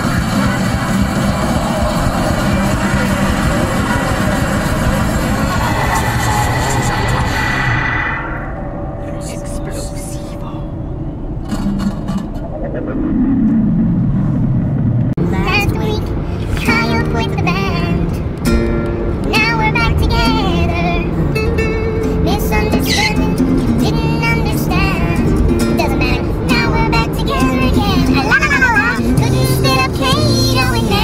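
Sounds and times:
rock song on car stereo: 0:00.0 - 0:07.6, 0:15.4 - 0:31.0
road noise inside car: 0:00.0 - 0:31.0.

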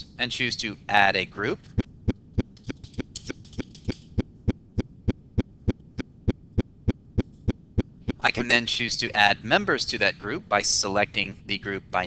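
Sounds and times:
sharp clicks: 0:01.7 - 0:08.2.

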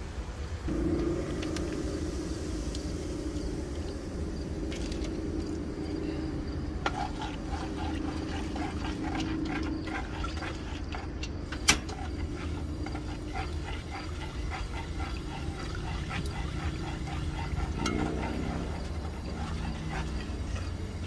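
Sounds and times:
steady low hum: 0:00.0 - 0:21.0
spoon scraping a metal pot: 0:06.8 - 0:21.0.

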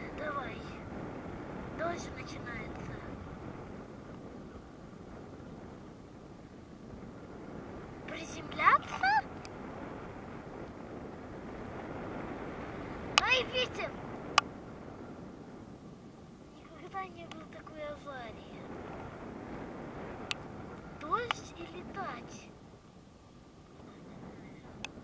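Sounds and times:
wind rushing over microphone: 0:00.0 - 0:25.0.

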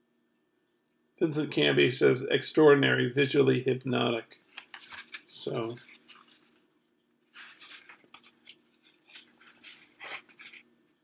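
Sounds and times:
faint steady hum: 0:00.0 - 0:11.0
plastic case scraping and rubbing: 0:07.3 - 0:10.7.

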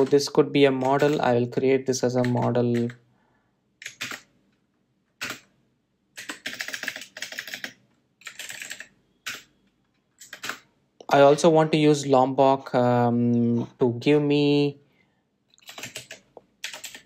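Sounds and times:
typing on keyboard: 0:00.0 - 0:01.4, 0:02.1 - 0:03.0, 0:03.8 - 0:04.3, 0:05.2 - 0:05.5, 0:06.2 - 0:09.5, 0:10.2 - 0:10.7, 0:15.6 - 0:17.0.

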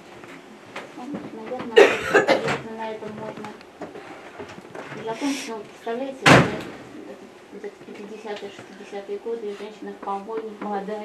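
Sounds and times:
person coughing: 0:01.8 - 0:02.6.

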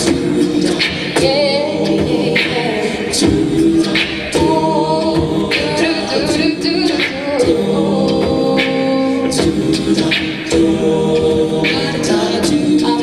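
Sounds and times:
a cappella group singing: 0:00.0 - 0:13.0.

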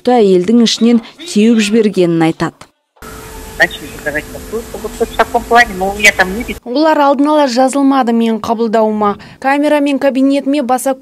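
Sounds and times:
low hum: 0:03.0 - 0:06.6
steady hiss: 0:03.0 - 0:06.6
voice over telephone line: 0:03.6 - 0:06.6.

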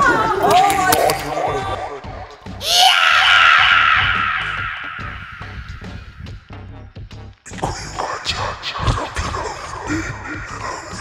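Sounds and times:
background music with low beat: 0:00.0 - 0:11.0
loud shrill scream: 0:02.6 - 0:06.1.

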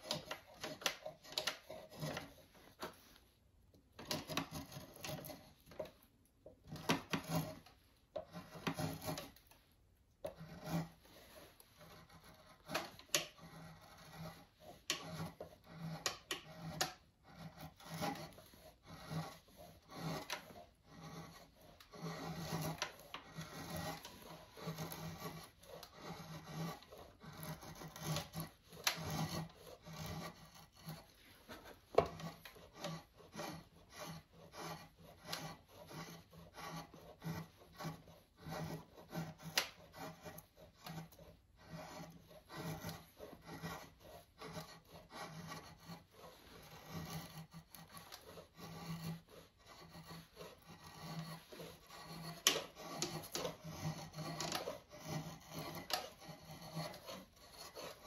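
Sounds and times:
drawknife scraping wood: 0:00.0 - 0:03.2, 0:04.0 - 0:09.6, 0:10.2 - 0:58.0.

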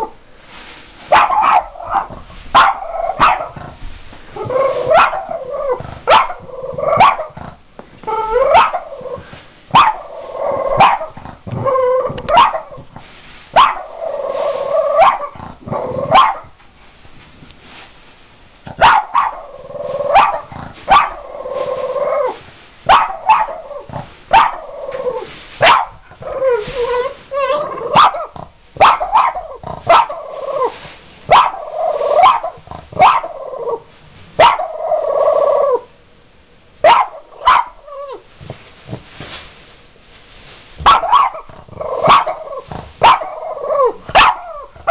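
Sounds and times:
dog barking: 0:01.1 - 0:03.6, 0:04.8 - 0:07.4, 0:08.4 - 0:09.0, 0:09.7 - 0:11.2, 0:12.2 - 0:12.8, 0:13.5 - 0:14.0, 0:14.9 - 0:16.6, 0:18.7 - 0:21.3, 0:22.9 - 0:23.7, 0:24.3 - 0:24.7, 0:25.6 - 0:26.0, 0:27.4 - 0:30.3, 0:31.3 - 0:33.4, 0:34.4 - 0:34.8, 0:36.8 - 0:37.9, 0:40.8 - 0:44.9.

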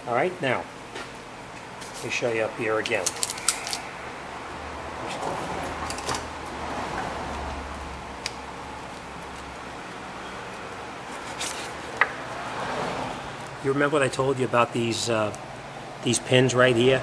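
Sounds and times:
workshop hum: 0:00.0 - 0:17.0.

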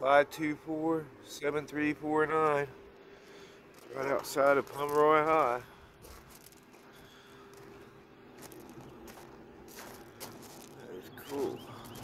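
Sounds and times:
footsteps crunching on gravel: 0:03.6 - 0:12.0.

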